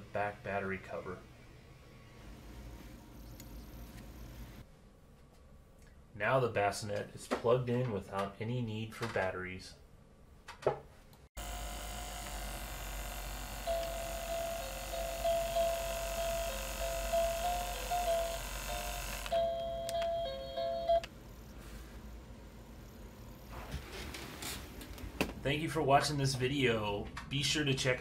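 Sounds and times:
electronic lullaby chime tones: 13.7s - 21.1s.

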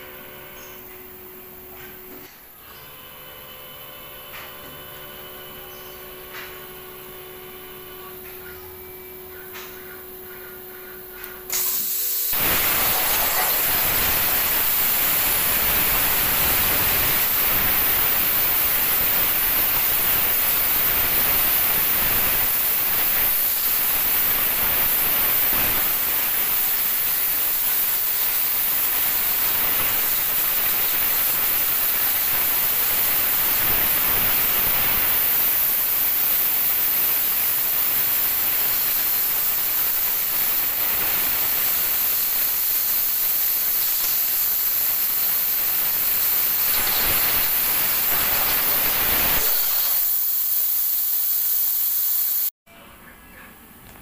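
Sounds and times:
machine hum: 0.0s - 42.6s
cutting torch hissing: 11.4s - 52.6s.

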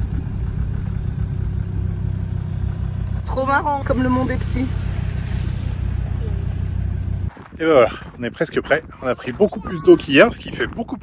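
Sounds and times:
car engine running inside cabin: 0.0s - 7.3s.

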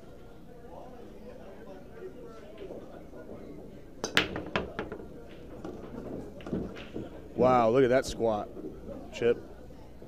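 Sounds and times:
pool balls clicking: 2.5s - 8.9s.

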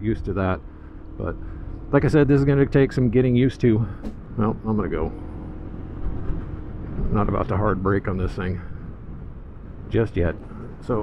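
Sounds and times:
low road rumble: 0.0s - 11.0s.

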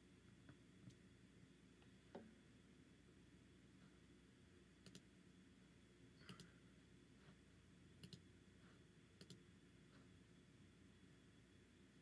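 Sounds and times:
computer mouse double-clicks: 4.8s - 5.1s, 6.2s - 6.5s, 8.0s - 8.2s, 9.2s - 9.4s.

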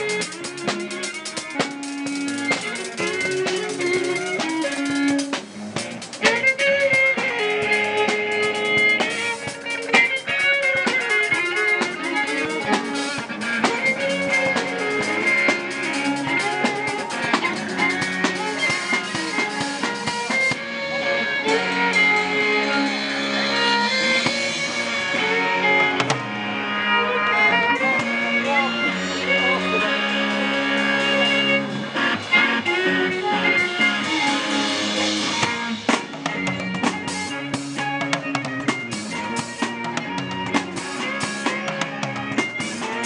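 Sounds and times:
drum kit: 0.0s - 43.0s
electric violin melody: 0.0s - 43.0s
guitar: 0.0s - 43.0s.

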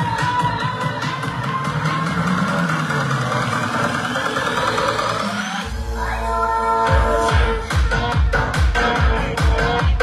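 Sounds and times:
electronic dance music: 0.0s - 10.0s
heavy bass beats: 0.0s - 10.0s.

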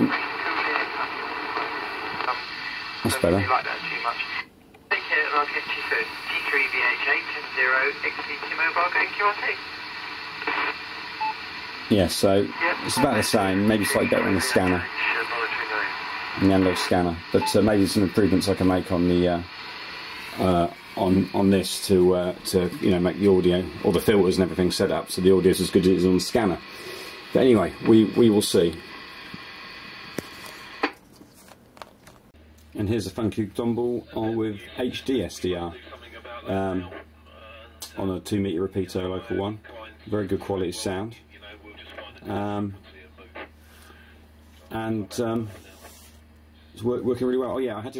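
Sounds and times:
voice through radio loudspeaker: 0.0s - 9.7s, 12.5s - 19.1s
radio clicks: 0.0s - 11.8s, 28.7s - 31.0s
radio hiss: 0.0s - 31.0s, 33.6s - 38.2s, 38.8s - 47.9s
faint hum: 0.0s - 47.9s.

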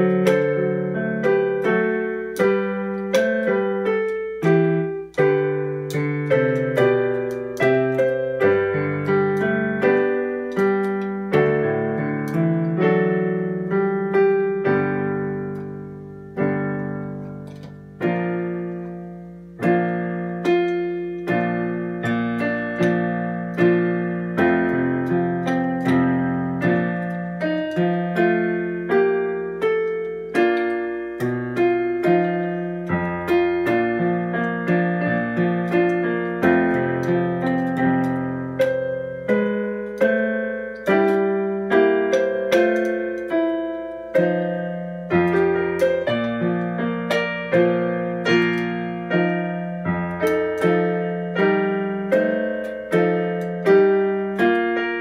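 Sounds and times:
electronic keyboard playing chords: 0.0s - 55.0s.

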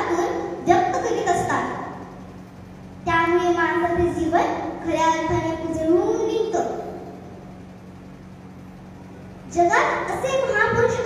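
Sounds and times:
sound system hum and hiss: 0.0s - 11.0s.

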